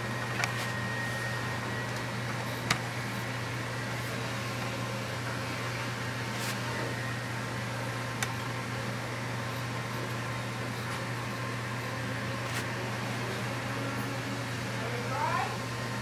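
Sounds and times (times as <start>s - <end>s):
machine hum: 0.0s - 16.0s.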